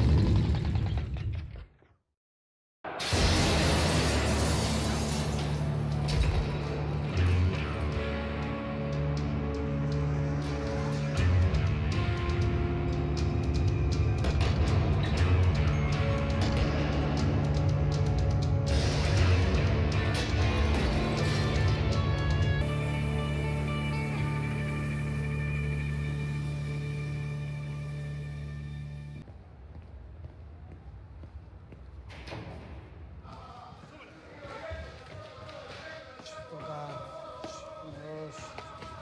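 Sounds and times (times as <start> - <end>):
low drone: 18.7 - 29.2.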